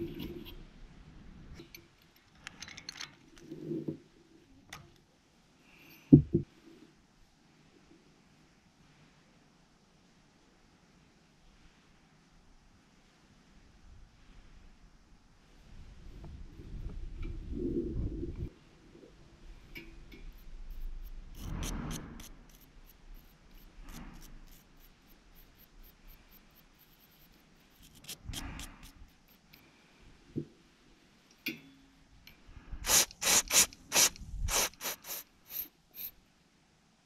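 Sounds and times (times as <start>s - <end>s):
spark plug being scrubbed: 20.7s - 29.5s, 32.8s - 36.2s
wire brush scrubbing spark plug: 32.8s - 36.1s.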